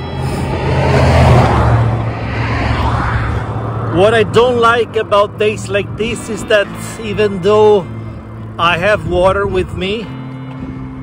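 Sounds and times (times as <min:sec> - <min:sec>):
vehicle passing: 0:00.0 - 0:06.8.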